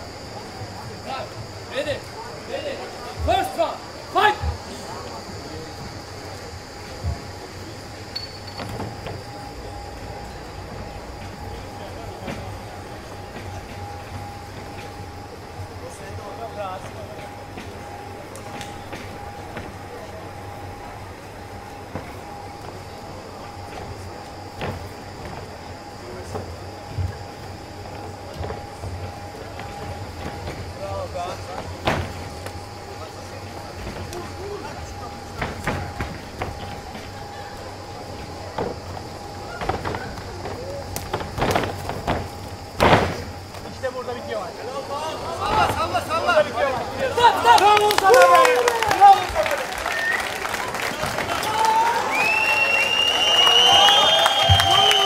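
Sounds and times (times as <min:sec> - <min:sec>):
high-pitched whine: 0:00.0 - 0:47.5
steady hum: 0:00.0 - 0:55.0
faint shouted voices: 0:08.8 - 0:41.4, 0:42.3 - 0:55.0.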